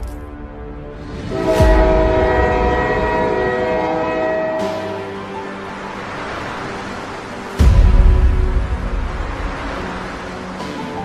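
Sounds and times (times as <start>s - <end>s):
train horn chord: 1.2s - 5.8s.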